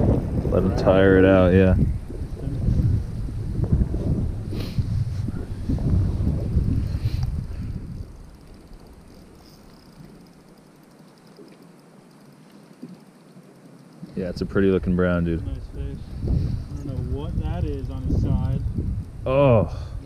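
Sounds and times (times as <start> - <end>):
wind buffeting microphone: 0.0 - 10.6, 14.1 - 20.0
water noise: 0.0 - 19.6.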